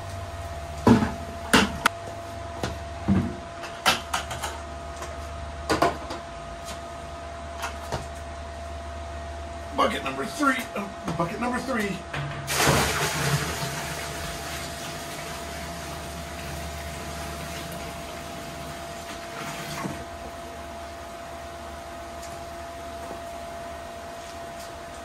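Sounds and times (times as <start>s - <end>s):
wine pouring into metal tank: 12.5s - 20.0s.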